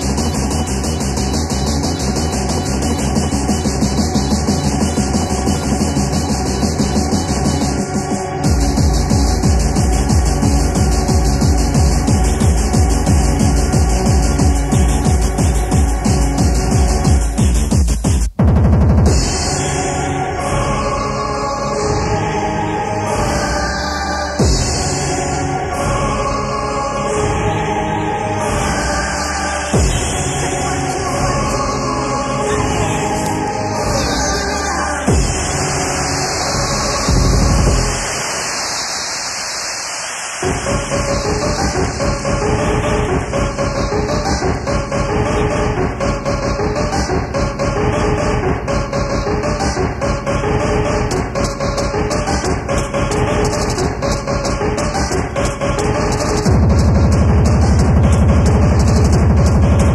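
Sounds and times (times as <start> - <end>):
deep bass hit: 0.0 - 21.0, 24.4 - 26.2, 29.8 - 31.6, 35.1 - 38.3, 40.5 - 59.9
fast techno music: 0.0 - 59.9
kick drum roll: 8.4 - 19.5, 35.1 - 35.6, 44.4 - 59.9.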